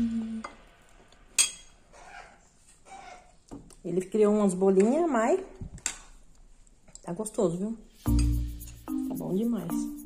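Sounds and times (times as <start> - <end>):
metal spoon clinking glass plate: 1.4 - 1.7.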